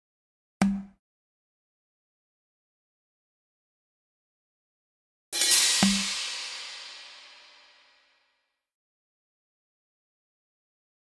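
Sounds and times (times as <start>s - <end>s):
low drum hit: 5.4s - 7.9s
cymbal crash: 5.4s - 8.2s.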